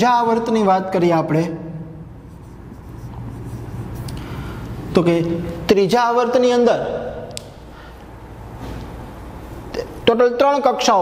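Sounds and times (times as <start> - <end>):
low steady hum: 1.0 - 10.2
marker writing on whiteboard: 2.1 - 5.6.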